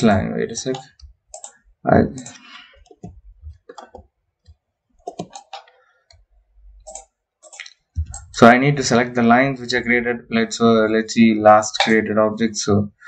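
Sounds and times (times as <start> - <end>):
mouse and keyboard clicks: 0.7 - 1.6, 2.2 - 6.2.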